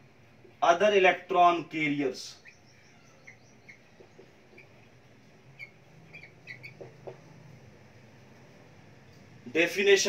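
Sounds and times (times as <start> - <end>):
marker squeaking on whiteboard: 2.4 - 4.9, 5.5 - 7.3.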